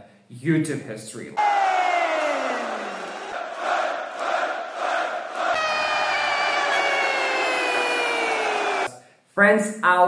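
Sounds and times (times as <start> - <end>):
crowd chanting: 1.4 - 8.9.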